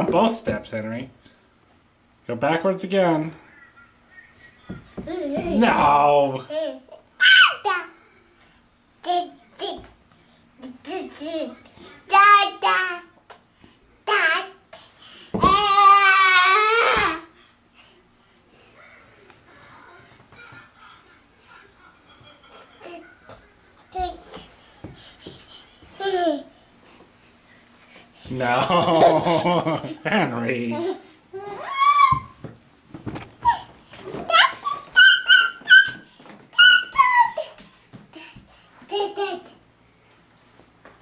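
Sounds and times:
toddler shrieking: 7.2s - 7.8s, 31.4s - 32.4s, 34.3s - 36.0s, 36.6s - 37.5s.

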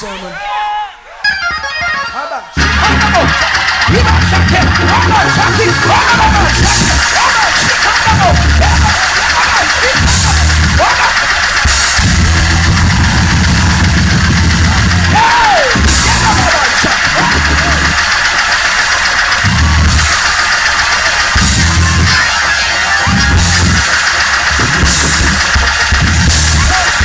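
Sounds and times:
voices shouting: 0.3s - 27.0s
gospel music: 1.1s - 27.0s
cymbal crashes: 2.6s - 27.0s
heavy bass chords: 2.6s - 27.0s.

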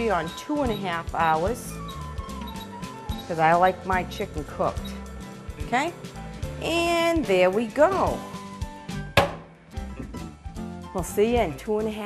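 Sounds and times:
faint background music: 0.0s - 12.0s
rotisserie oven knock: 9.2s - 9.5s.

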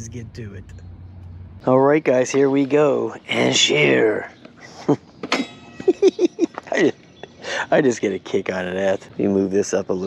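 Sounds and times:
man laughing: 4.6s - 5.0s, 5.8s - 7.9s.

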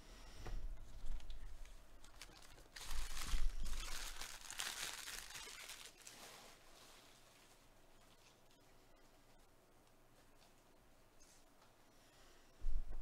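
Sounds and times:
foil wrapper crinkling: 0.9s - 6.6s.

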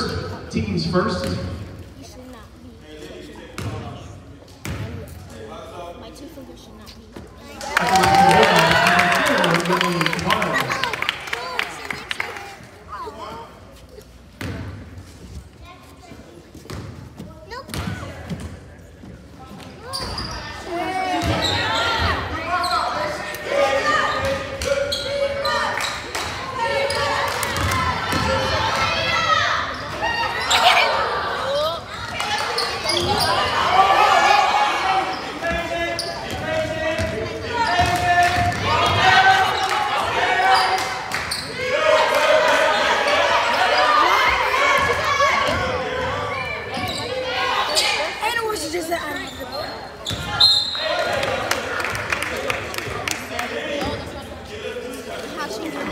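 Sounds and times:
players and spectators shouting: 7.6s - 12.3s, 20.2s - 49.6s.

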